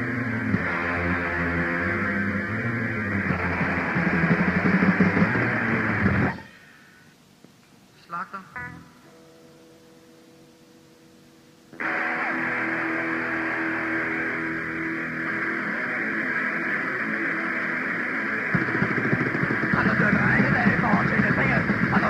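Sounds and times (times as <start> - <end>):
distorted punk band chords: 0.0 - 6.8, 11.7 - 22.0
tape hiss: 0.0 - 22.0
fast hard drum hits: 3.3 - 6.4, 18.5 - 22.0.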